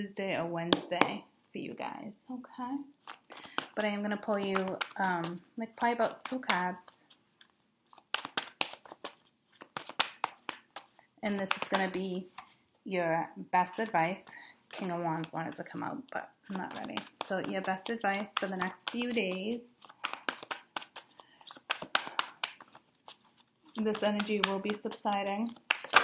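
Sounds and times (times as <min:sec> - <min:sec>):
cards being shuffled: 0:03.0 - 0:12.6, 0:13.7 - 0:26.0.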